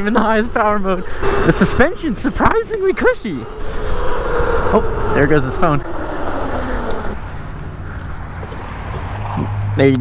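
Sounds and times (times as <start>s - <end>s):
wind rushing on camera: 0.0s - 9.7s.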